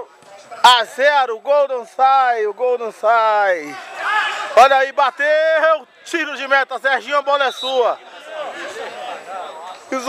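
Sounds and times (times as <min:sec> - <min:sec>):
overlapping background voices: 0:00.0 - 0:10.0.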